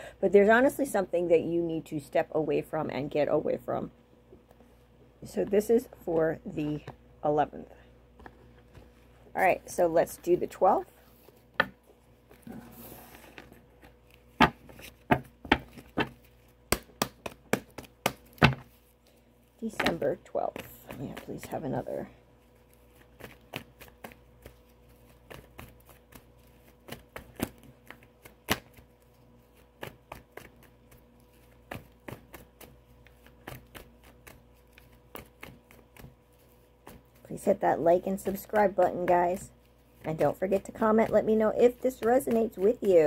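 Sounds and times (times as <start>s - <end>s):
cards being shuffled: 8.2s - 21.8s, 22.4s - 43.0s.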